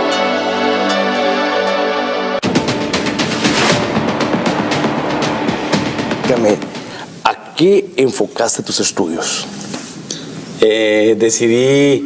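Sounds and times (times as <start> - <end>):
music jingle: 0.0 - 7.4
low steady drone: 2.4 - 7.6
rapid percussive hits: 2.4 - 7.7.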